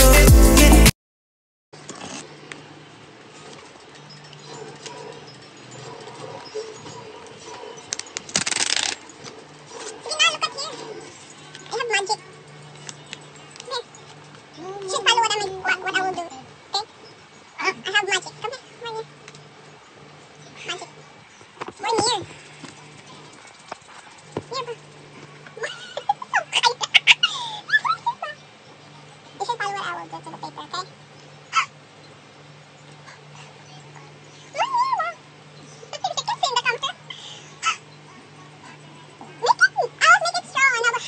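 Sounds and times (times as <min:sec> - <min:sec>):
paper crackling rustle: 0:08.2 - 0:09.1.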